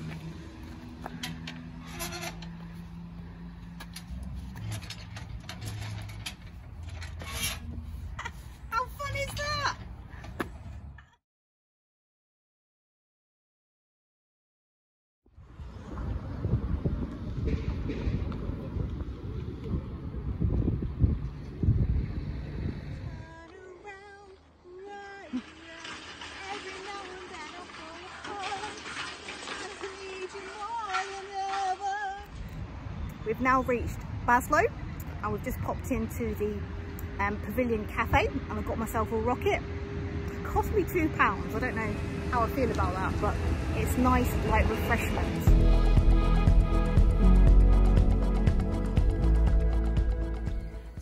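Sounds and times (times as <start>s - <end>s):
low engine hum: 0.0s - 11.0s, 15.3s - 51.0s
iron gate clicking and clanking: 1.2s - 2.7s, 3.8s - 7.8s
wind buffeting microphone: 15.4s - 23.6s.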